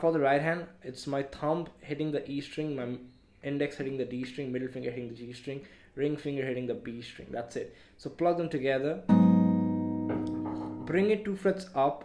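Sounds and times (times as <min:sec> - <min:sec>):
acoustic guitar chord ringing: 0:09.1 - 0:11.0.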